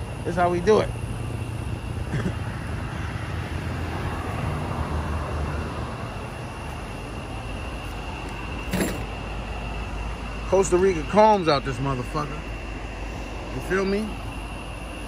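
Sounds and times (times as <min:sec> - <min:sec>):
vehicles passing on highway: 0:00.0 - 0:15.0.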